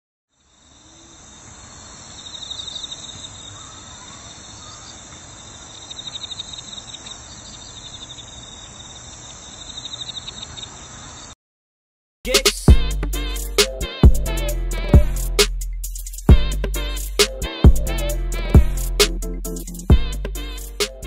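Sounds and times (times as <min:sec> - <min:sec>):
insects chirping in trills: 0:00.3 - 0:11.4
outdoor ambience hiss: 0:00.3 - 0:11.4.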